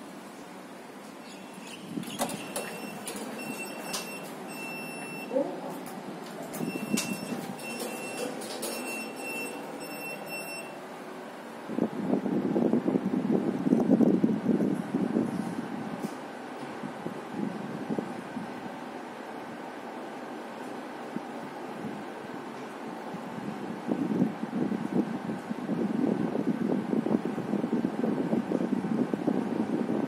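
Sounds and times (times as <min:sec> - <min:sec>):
lift doors closing and rumbling: 0:00.0 - 0:29.7
lift beeping: 0:01.1 - 0:05.5, 0:06.3 - 0:11.2.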